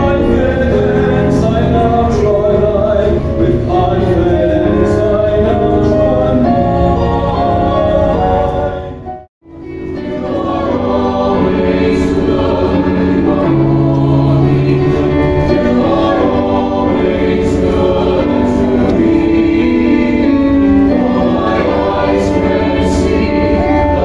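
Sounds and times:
choir singing a hymn: 0.0 - 24.0.

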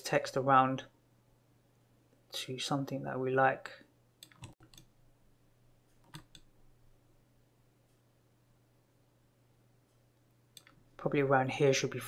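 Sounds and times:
low steady hum: 0.0 - 12.0
computer mouse clicks: 4.2 - 4.9, 6.0 - 6.5.

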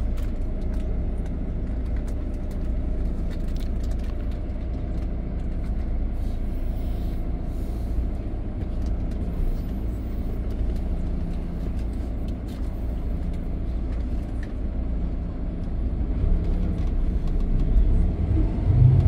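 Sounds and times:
bus engine low rumble: 0.0 - 19.0.

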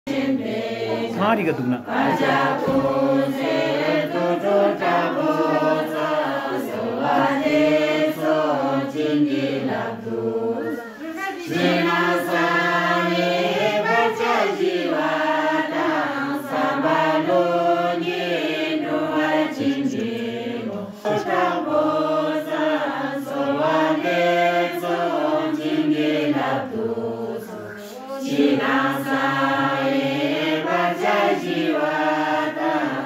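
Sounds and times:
group chanting a prayer: 0.1 - 33.0.

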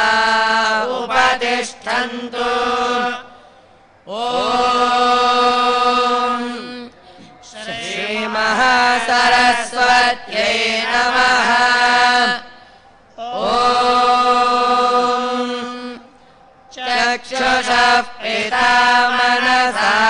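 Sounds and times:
men chanting: 0.0 - 3.3, 4.1 - 12.5, 13.2 - 16.0, 16.7 - 20.0.

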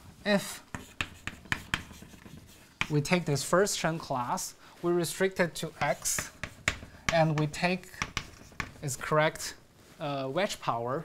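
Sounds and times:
chalk strokes on blackboard: 0.3 - 10.0
chalk tapping on blackboard: 0.7 - 4.4, 5.3 - 9.0.

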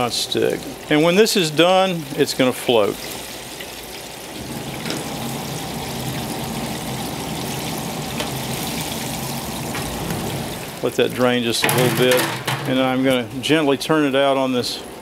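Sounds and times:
oil sizzling and bubbling: 0.0 - 13.5.

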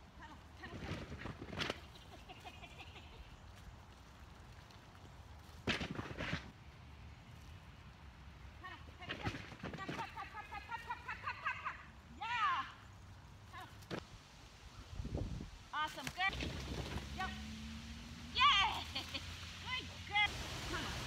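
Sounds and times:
faint outdoor background: 0.0 - 21.0.

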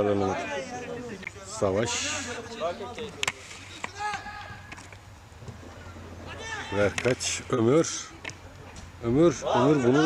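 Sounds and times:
players calling faintly: 0.0 - 10.0.

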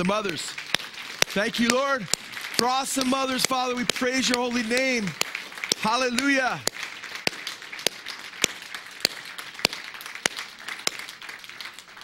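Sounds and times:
congregation applauding: 0.0 - 12.0
loud claps: 0.0 - 12.0.

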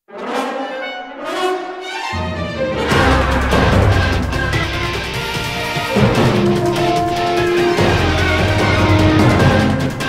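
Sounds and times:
orchestral music with brass: 0.0 - 10.0.

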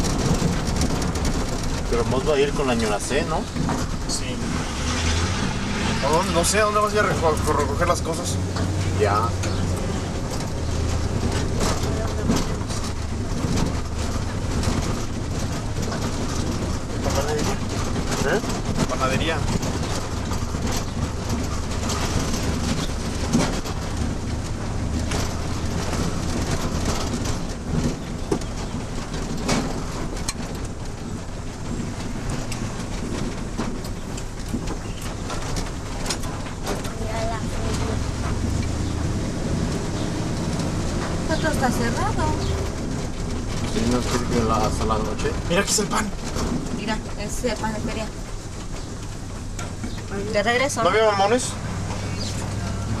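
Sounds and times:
car engine and road noise: 0.0 - 53.0.

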